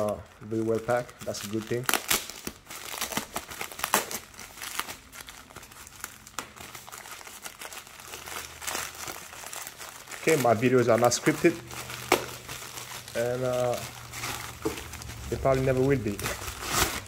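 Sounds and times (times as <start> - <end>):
plastic envelope crinkling: 0.0 - 17.0.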